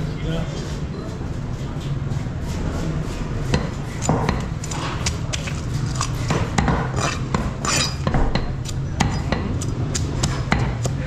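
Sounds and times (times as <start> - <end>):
steady background hum: 0.0 - 11.0
knife chopping fish on wooden block: 3.6 - 11.0.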